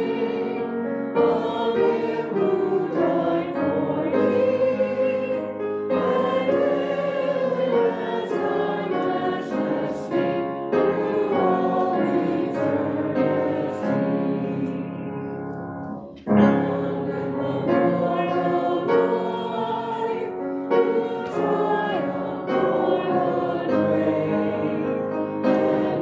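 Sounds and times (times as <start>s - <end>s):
choir singing a hymn: 0.0s - 26.0s.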